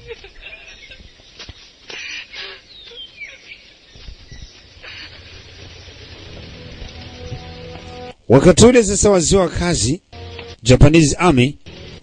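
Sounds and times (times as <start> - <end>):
bird chirps: 0.5 - 8.0.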